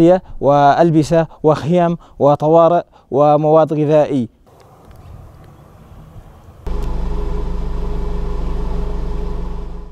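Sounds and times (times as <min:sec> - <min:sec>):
pulsing low engine hum: 0:04.5 - 0:09.9.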